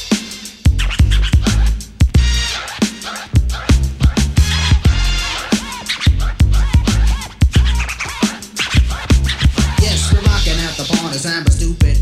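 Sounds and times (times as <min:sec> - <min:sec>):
hip hop drum beat and bass: 0:00.0 - 0:12.0
turntable scratching: 0:00.0 - 0:12.0.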